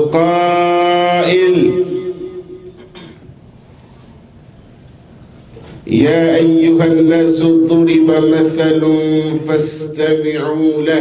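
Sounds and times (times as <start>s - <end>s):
man chanting through loudspeakers: 0.0s - 2.9s, 5.8s - 11.0s
loudspeaker hiss: 0.0s - 11.0s.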